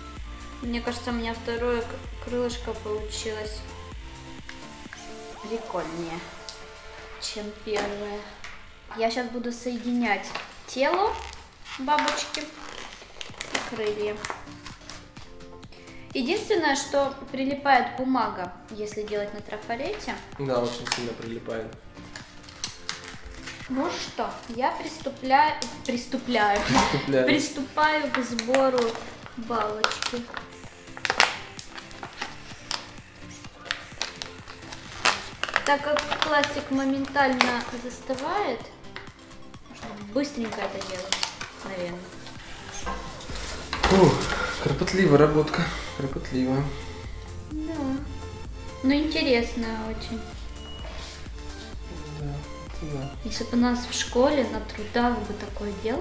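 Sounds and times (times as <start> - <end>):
soft background music: 0.0 - 56.0
person's voice: 26.3 - 30.3.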